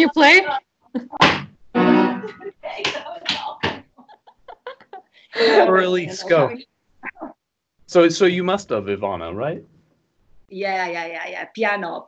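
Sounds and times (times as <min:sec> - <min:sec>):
people laughing: 0:02.1 - 0:06.6
loud voice burst: 0:05.4 - 0:06.6.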